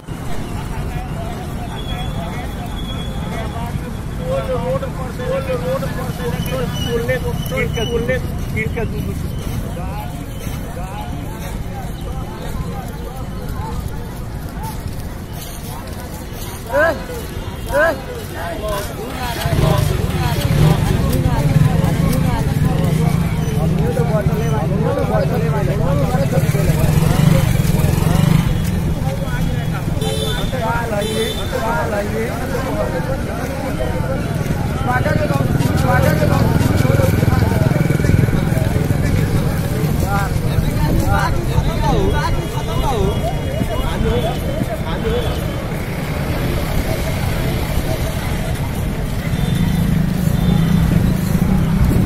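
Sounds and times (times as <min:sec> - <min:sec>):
motorcycle engines rumbling: 0:00.0 - 0:52.0
people talking over one another: 0:00.0 - 0:52.0.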